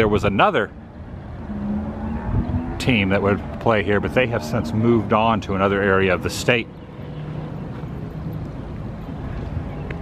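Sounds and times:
distant vehicle rumble: 0.0s - 10.0s.

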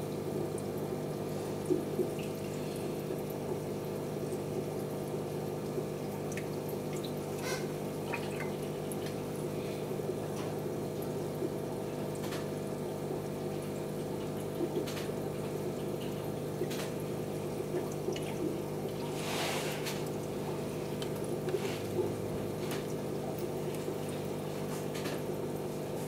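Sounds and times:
filter motor hum: 0.0s - 26.0s
water splashing and bubbling: 0.0s - 26.0s.

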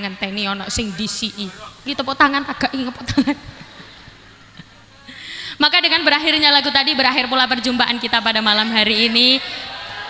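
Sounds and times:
crowd background noise: 0.0s - 10.0s.

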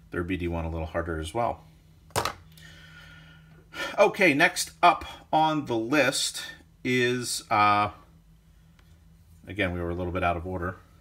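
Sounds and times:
sharp intake of breath: 2.5s - 4.0s
faint long breath: 2.6s - 3.8s
person talking: 9.4s - 10.8s.

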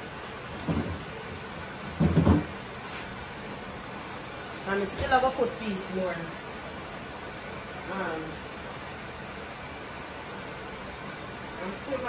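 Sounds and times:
refrigerator door knock: 2.0s - 2.5s.

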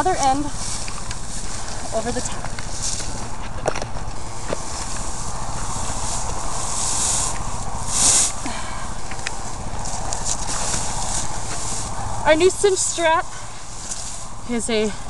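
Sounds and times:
hay and netting rustling: 0.0s - 15.0s
hissing rustles: 0.0s - 15.0s
steady low rumble: 0.0s - 15.0s.

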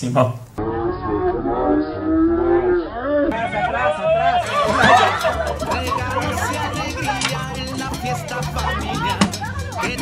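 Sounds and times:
chatter of children and adults: 3.3s - 10.0s
man laughing: 3.4s - 7.9s.

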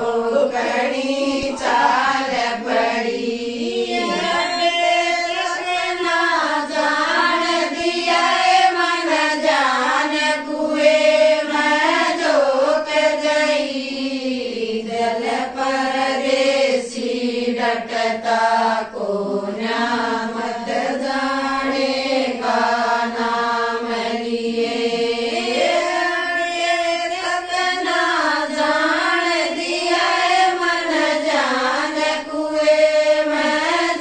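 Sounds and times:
women singing in unison: 0.0s - 34.0s.

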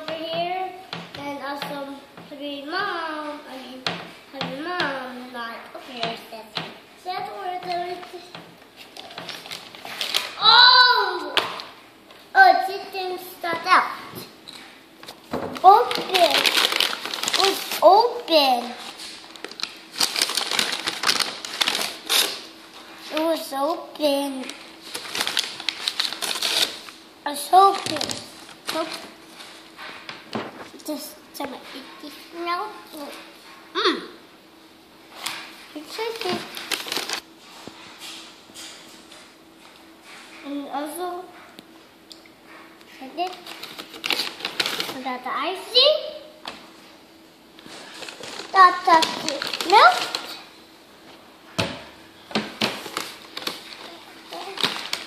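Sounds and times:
items knocking on a table: 0.0s - 2.3s, 3.8s - 5.0s, 6.0s - 6.8s, 15.3s - 15.7s, 51.6s - 52.8s
paper bag rustling: 8.8s - 10.7s, 15.5s - 17.8s, 18.6s - 22.5s, 24.2s - 30.8s, 35.2s - 37.2s, 43.2s - 45.0s, 47.6s - 50.4s, 52.6s - 55.0s.

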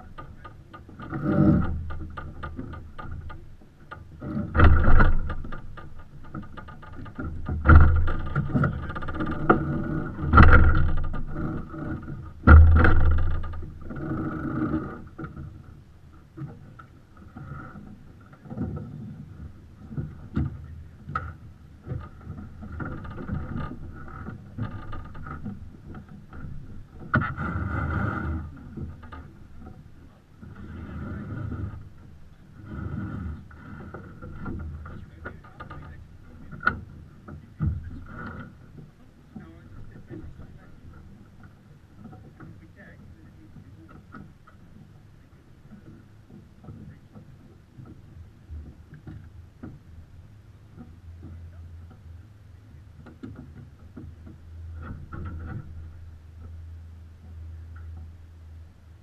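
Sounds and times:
water washing along hull: 0.0s - 59.0s
clicks of lines being handled: 50.7s - 58.2s.

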